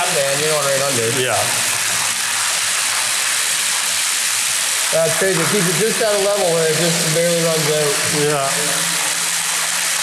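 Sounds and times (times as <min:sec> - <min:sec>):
water splashing from drain pipe: 0:00.0 - 0:10.0.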